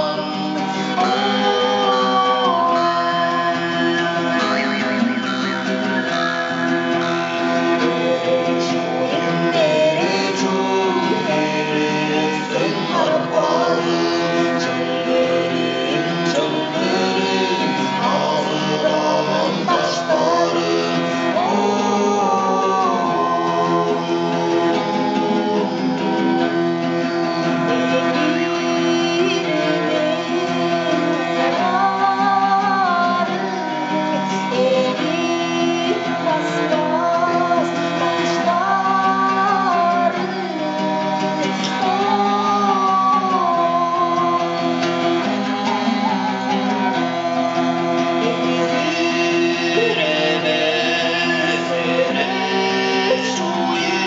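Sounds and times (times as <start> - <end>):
person singing: 0.0 - 54.0
strummed lute: 0.0 - 54.0.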